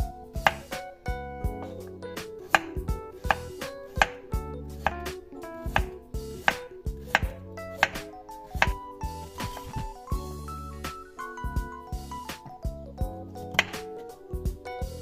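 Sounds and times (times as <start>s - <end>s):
knife slicing carrot on board: 0.4s - 0.8s, 2.2s - 9.9s, 13.5s - 13.8s.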